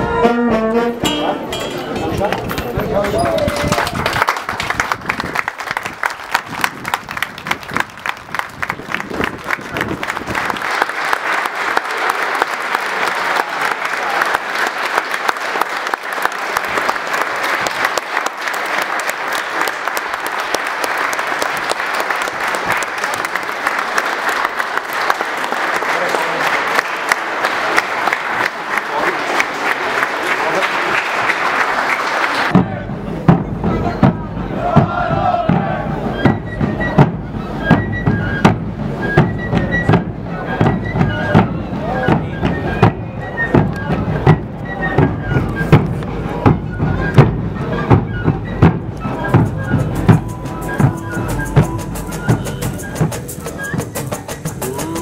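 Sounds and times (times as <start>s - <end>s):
crowd voices: 0.0s - 55.0s
crowd applauding: 2.0s - 33.0s, 44.9s - 55.0s
bass drums beating: 32.5s - 55.0s.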